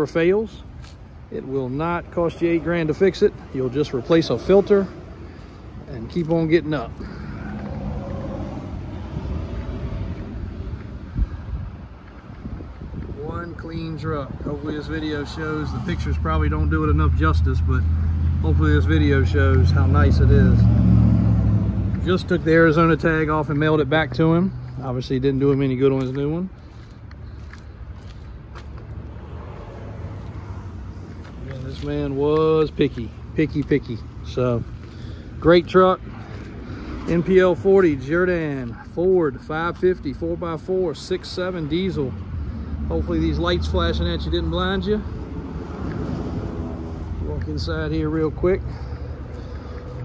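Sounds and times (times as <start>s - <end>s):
vehicle engine rumbling: 0.0s - 50.0s
wind on microphone: 8.5s - 14.8s.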